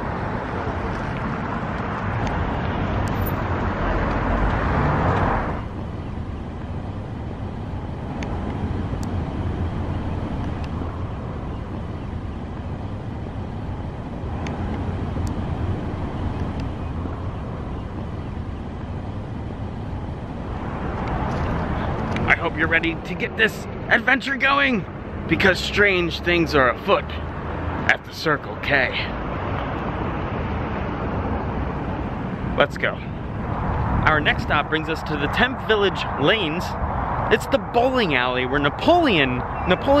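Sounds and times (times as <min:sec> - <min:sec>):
passing cars traffic noise: 0:00.0 - 0:40.0.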